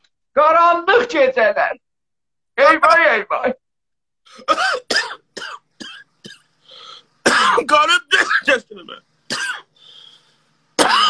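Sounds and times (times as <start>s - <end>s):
man coughing hoarsely: 4.4s - 6.5s, 7.2s - 8.6s, 9.3s - 9.7s, 10.8s - 11.0s.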